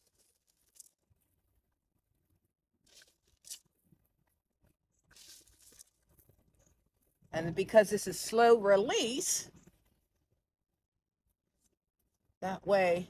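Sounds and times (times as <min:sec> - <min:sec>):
fertilizer granules rustling: 0:00.0 - 0:01.0, 0:05.1 - 0:06.0.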